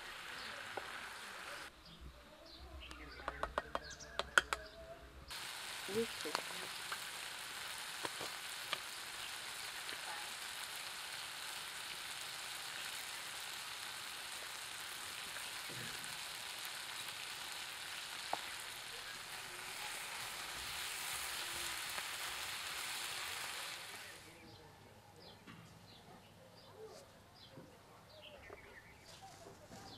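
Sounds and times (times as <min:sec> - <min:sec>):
vegetables sizzling in a pan: 0:00.0 - 0:01.7, 0:05.3 - 0:24.4.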